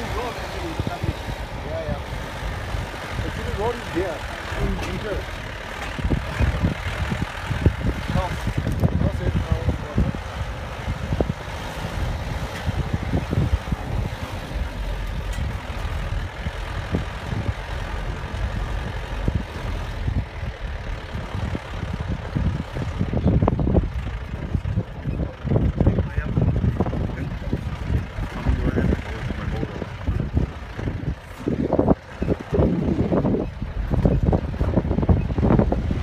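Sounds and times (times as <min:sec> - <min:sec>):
wind buffeting microphone: 0:00.0 - 0:36.0.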